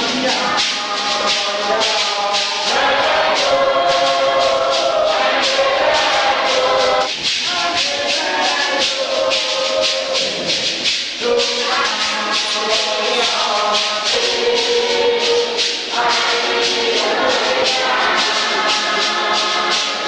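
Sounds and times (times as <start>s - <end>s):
choir singing a hymn: 0.0s - 20.0s
shaken rattles: 0.0s - 20.0s.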